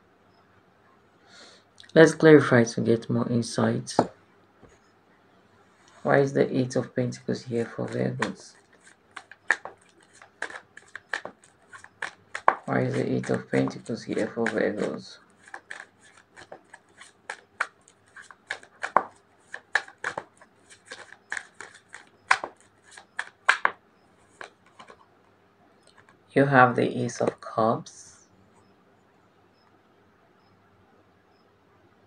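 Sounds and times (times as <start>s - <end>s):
cards clicking and rustling: 7.6s - 25.1s.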